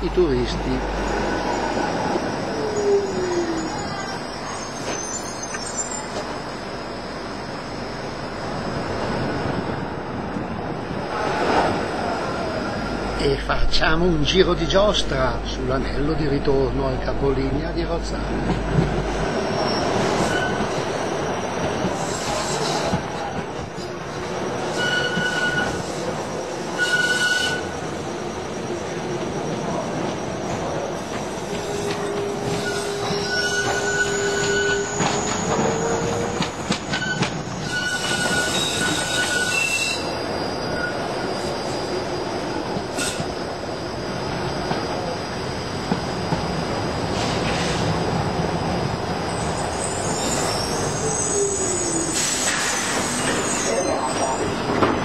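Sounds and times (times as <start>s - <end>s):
tram wheels squealing: 0.0s - 9.6s, 11.0s - 55.0s
wheels rumbling on rail: 0.0s - 55.0s.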